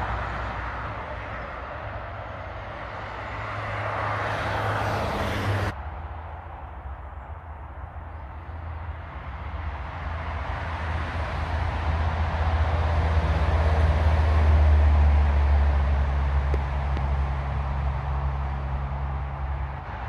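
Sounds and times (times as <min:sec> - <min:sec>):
passing engine rumble: 0:00.0 - 0:20.0.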